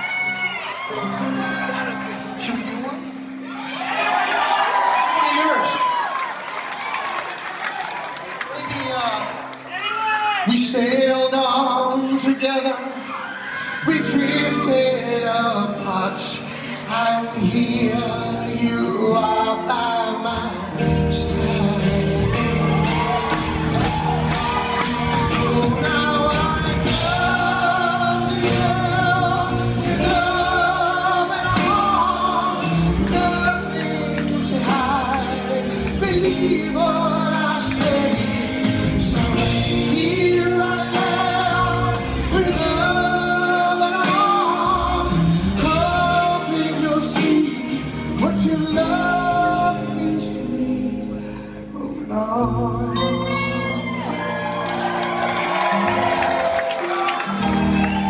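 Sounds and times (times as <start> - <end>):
audience cheering and shouting: 0.0 - 15.4, 21.2 - 47.7, 52.9 - 58.0
live band playing: 0.0 - 58.0
high whoop: 3.5 - 8.0, 22.2 - 26.0, 53.0 - 58.0
man singing: 10.4 - 54.6.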